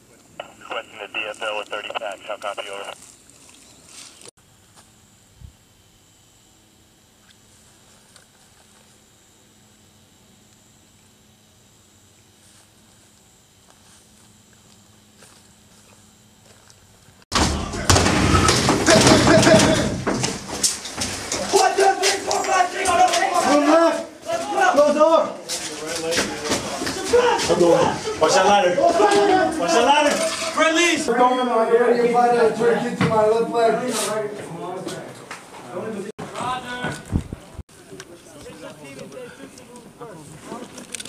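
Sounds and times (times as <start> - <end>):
man speaking: 0.4 - 3.0.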